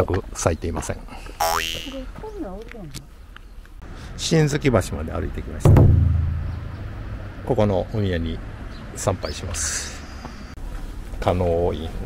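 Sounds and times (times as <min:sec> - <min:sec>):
warbling wobbling tone: 0:01.4 - 0:02.0.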